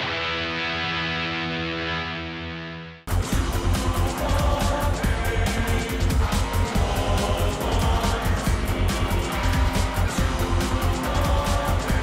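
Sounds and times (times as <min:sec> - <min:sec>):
distorted electric guitar chord: 0:00.0 - 0:11.1.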